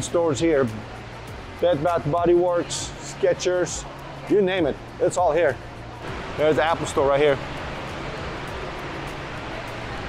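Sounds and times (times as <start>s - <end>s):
shopping mall background noise: 0.0s - 10.0s.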